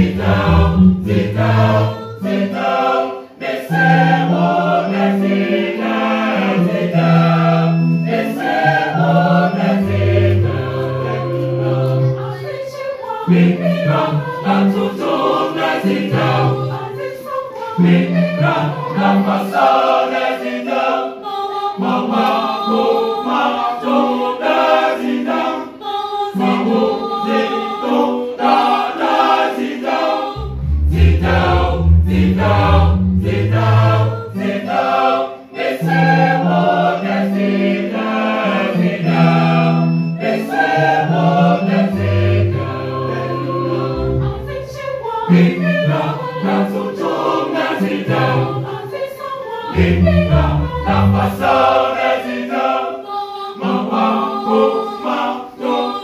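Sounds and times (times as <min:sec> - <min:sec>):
mixed choir singing gospel: 0:00.0 - 0:56.0
electronic keyboard: 0:03.7 - 0:19.9, 0:30.4 - 0:48.8
deep bass line: 0:30.4 - 0:33.8.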